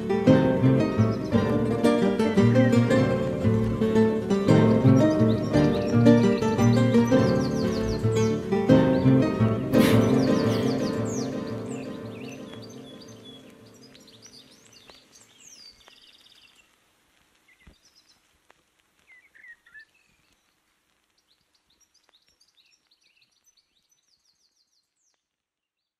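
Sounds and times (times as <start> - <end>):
birdsong chirps and trills: 0.0 - 16.8, 19.0 - 20.5
music beat: 8.7 - 12.9.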